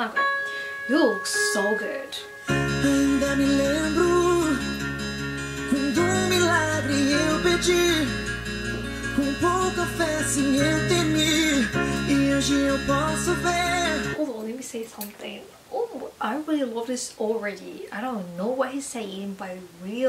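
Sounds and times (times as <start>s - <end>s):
sustained instrumental accompaniment: 0.0s - 14.2s
man singing long gliding notes: 2.5s - 14.2s.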